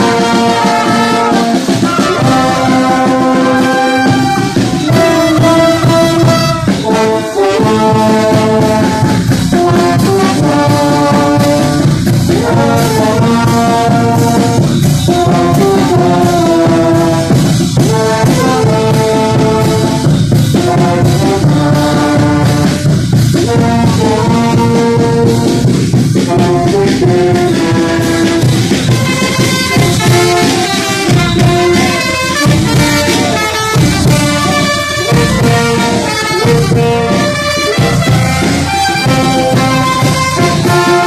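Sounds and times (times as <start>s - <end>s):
brass band playing dance tune: 0.0s - 41.0s.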